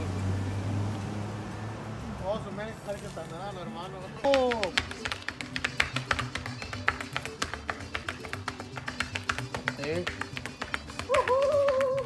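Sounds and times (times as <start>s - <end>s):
shoes tapping on concrete: 2.9s - 12.0s
string music with steady beat: 4.1s - 11.1s.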